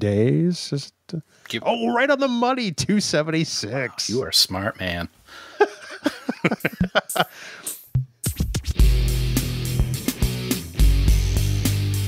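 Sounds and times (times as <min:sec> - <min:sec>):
laughter: 0:05.5 - 0:07.4
record scratch effects: 0:08.2 - 0:08.9
loud music with heavy bass: 0:08.2 - 0:12.0.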